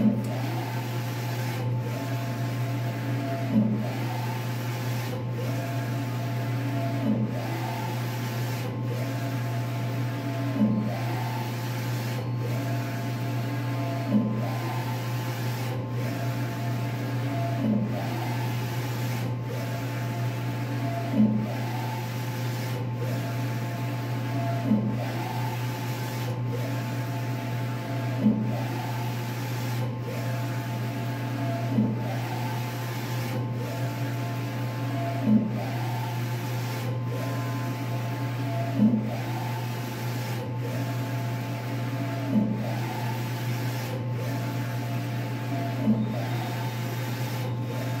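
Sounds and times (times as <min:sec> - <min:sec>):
printer carriage motor whining: 0:00.0 - 0:48.0.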